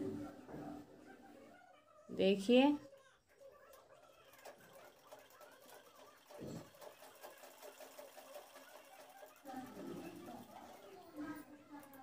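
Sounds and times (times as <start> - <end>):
sewing machine stitching: 3.7 - 11.1.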